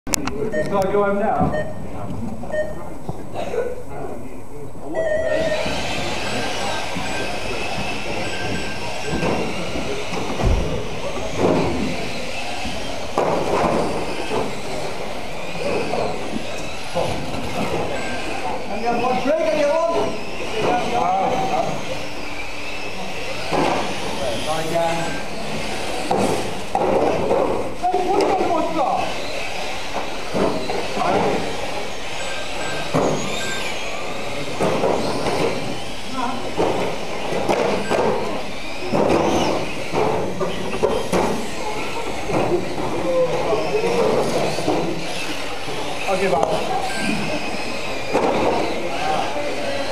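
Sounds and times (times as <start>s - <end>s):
rc car motors whining: 5.2s - 49.9s.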